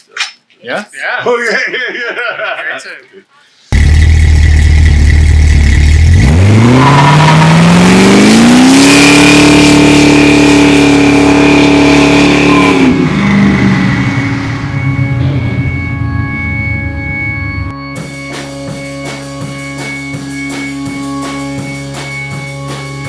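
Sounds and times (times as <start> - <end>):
car engine idling and revving: 3.7 - 23.0.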